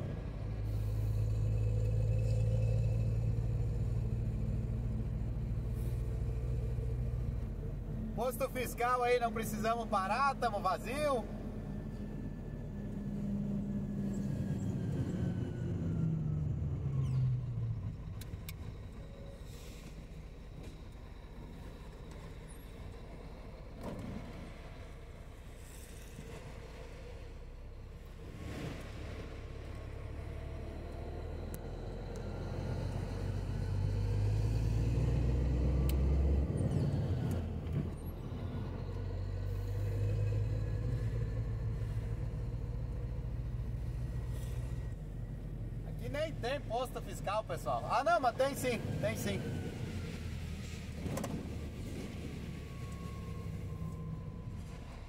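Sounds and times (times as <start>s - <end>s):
truck diesel engine: 0.0s - 55.0s.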